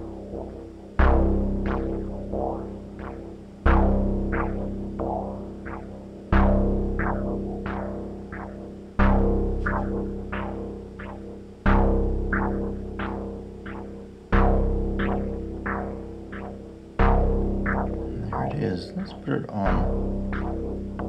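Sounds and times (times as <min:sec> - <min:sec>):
bass synthesizer notes with echoes: 0:00.0 - 0:21.0.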